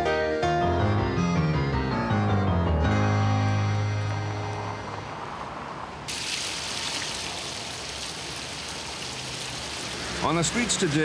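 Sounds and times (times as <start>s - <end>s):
background music: 0.0s - 5.5s
water splashing from a fountain: 6.0s - 11.0s.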